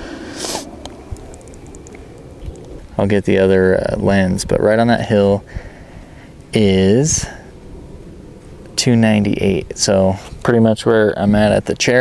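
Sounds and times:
low wind rumble: 0.0 - 12.0
faint high ticks: 0.8 - 2.8
light clicks: 0.8 - 2.8.

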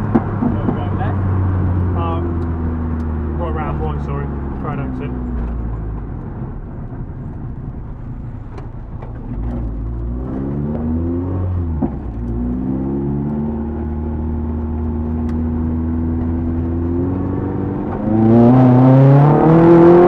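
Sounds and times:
car engine accelerating through gears: 0.0 - 20.0.

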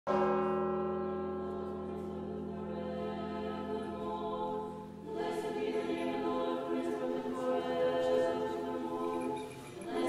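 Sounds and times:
choir holding a chord: 1.0 - 10.0.

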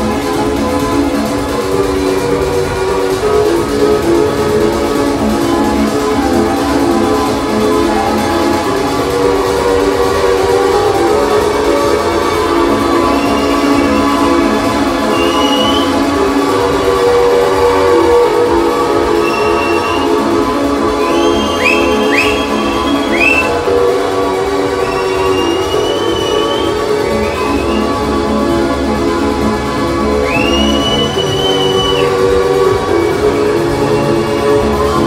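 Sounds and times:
loud dance music over pa: 0.0 - 35.0
rising whistle-like sweeps: 21.0 - 23.6, 24.8 - 28.0, 30.2 - 32.3.

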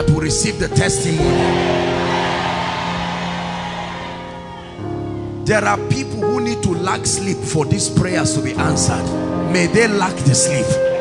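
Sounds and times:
keyboard chord held: 0.1 - 11.0.

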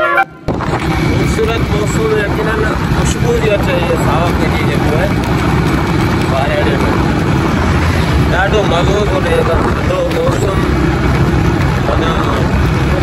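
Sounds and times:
motorcycle road noise: 0.2 - 13.0
wind rush: 0.3 - 13.0
man talking: 1.2 - 5.2, 6.2 - 7.0, 8.2 - 10.8, 11.8 - 13.0.

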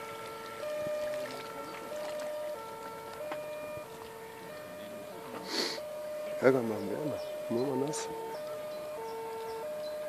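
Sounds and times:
two-tone siren: 0.0 - 10.0.

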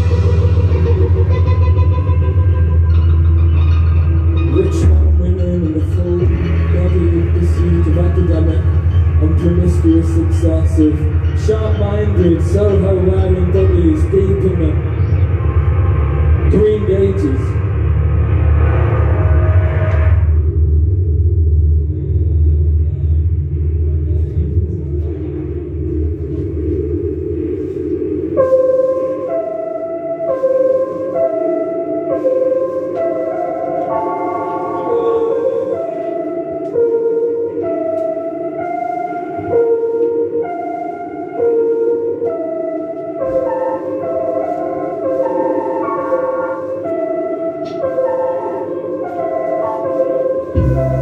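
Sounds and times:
electric guitar: 0.0 - 5.2
electric bass guitar line: 0.0 - 12.8, 50.6 - 51.0
electric guitar drone: 0.0 - 29.4, 50.4 - 51.0.

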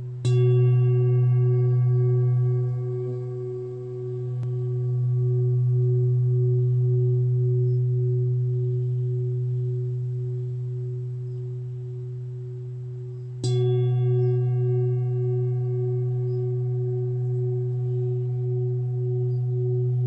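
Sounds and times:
singing bowl ringing: 0.0 - 20.0.

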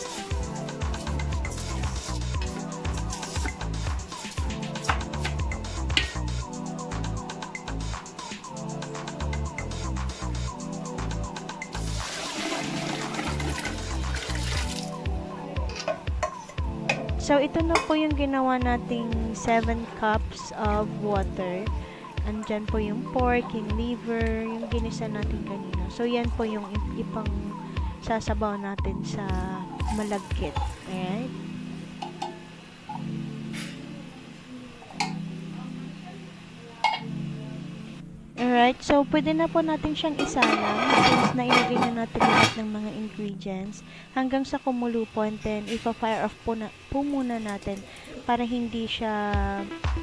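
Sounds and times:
background music with beat: 0.0 - 31.0, 49.3 - 50.0
broth splashing into pot: 11.8 - 15.0.

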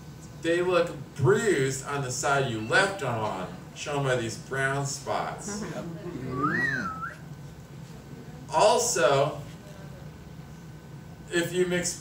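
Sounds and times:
person whistling: 6.3 - 7.2.

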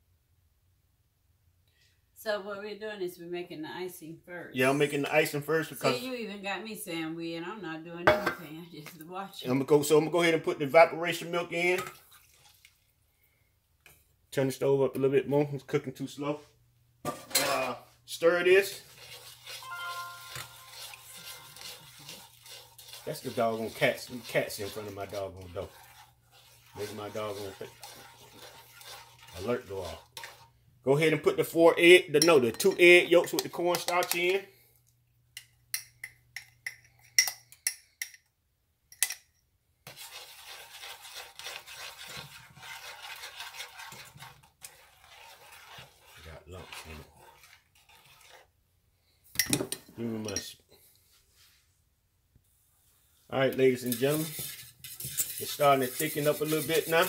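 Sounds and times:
spoon scraping metal pan: 8.0 - 9.0, 17.1 - 34.4, 39.9 - 50.5, 53.4 - 57.0
spoon tapping cup and saucepan: 8.1 - 8.4, 19.7 - 21.0, 32.2 - 34.3, 35.3 - 38.3
spoon stirring liquid in saucepan: 8.1 - 9.0, 9.6 - 14.2, 14.9 - 38.3, 38.9 - 51.6, 53.4 - 57.0.

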